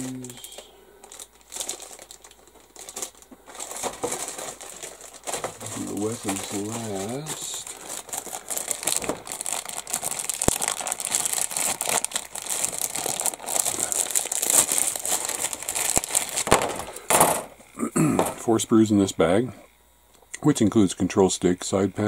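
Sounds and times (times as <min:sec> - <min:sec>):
plastic bag crinkling: 0:00.0 - 0:17.7.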